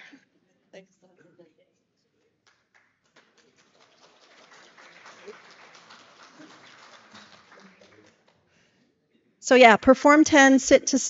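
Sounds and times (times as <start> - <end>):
audience applause: 2.7 - 8.4.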